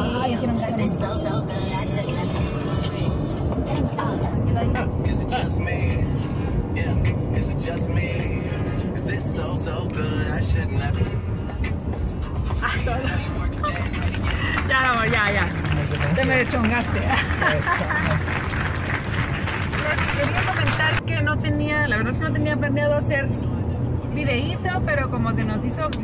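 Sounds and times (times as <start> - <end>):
music: 0.0 - 16.5
car road and engine rumble: 0.0 - 26.0.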